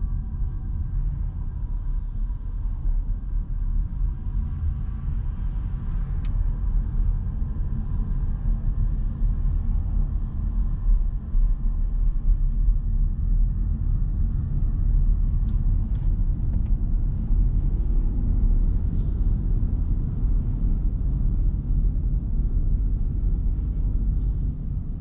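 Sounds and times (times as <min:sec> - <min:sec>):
road and tyre rumble in car cabin: 0:00.0 - 0:25.0.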